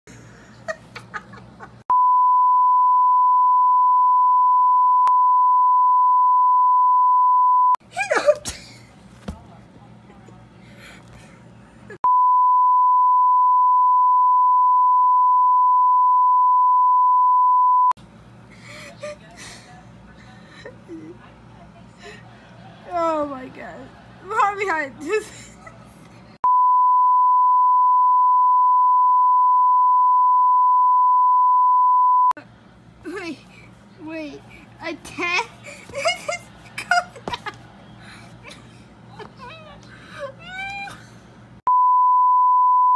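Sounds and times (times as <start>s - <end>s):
steady test tone beep: 1.9s - 7.8s, 12.0s - 18.0s, 26.4s - 32.4s, 41.7s - 42.9s.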